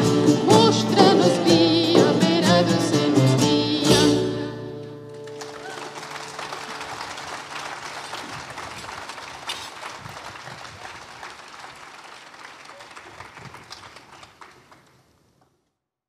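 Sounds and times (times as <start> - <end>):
audience applauding: 5.1 - 15.2.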